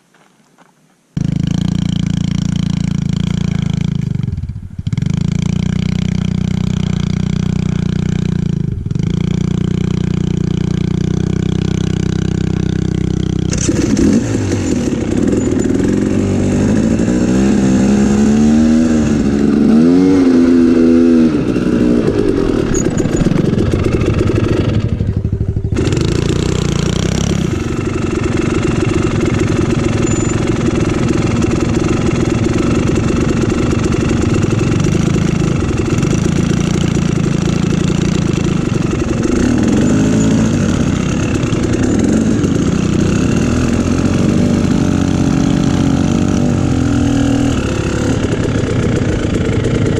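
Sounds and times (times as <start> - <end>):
dirt bike engine revving: 1.2 - 49.9.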